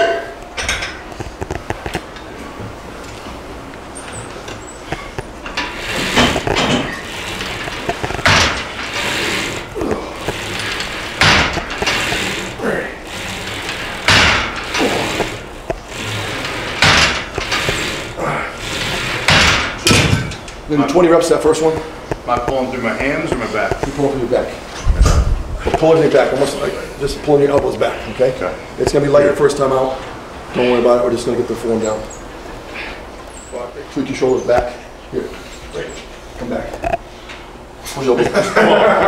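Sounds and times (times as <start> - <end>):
weight stack plates clanking: 3.9 - 21.8
metallic rattling: 3.9 - 22.4.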